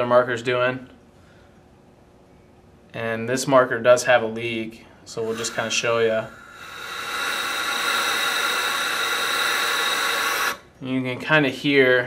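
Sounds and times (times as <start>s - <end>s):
compressed air hissing: 5.1s - 10.8s.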